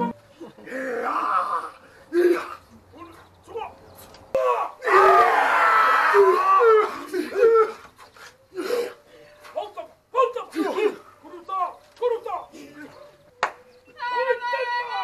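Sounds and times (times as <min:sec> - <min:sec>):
men shouting and chanting: 0:00.0 - 0:15.0.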